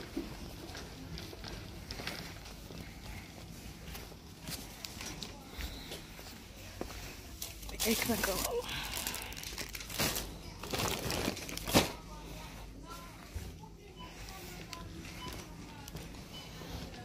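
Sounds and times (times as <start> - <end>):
plastic packaging crinkling: 7.4 - 12.2.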